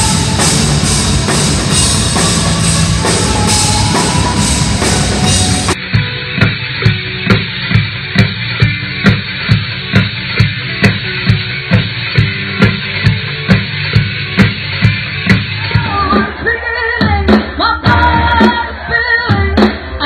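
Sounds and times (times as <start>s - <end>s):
drum kit steady beat: 0.0s - 20.0s.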